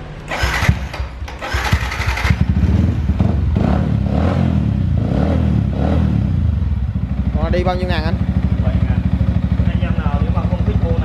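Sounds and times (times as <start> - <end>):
electric starter cranking: 0.3 - 2.6
motorcycle engine idling: 5.6 - 11.0.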